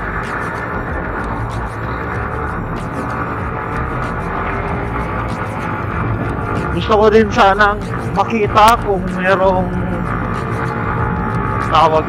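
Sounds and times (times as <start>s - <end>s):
background music: 0.0s - 12.0s
motorcycle engine cruising: 0.0s - 12.0s
road and wind noise: 0.0s - 12.0s.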